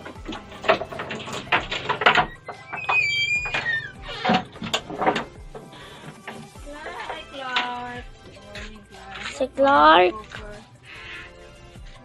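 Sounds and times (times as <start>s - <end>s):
wooden door unlocked and opened: 0.0s - 8.1s
chain and lock clattering: 0.0s - 10.6s
background music: 0.0s - 12.0s
door squeak: 0.2s - 6.5s.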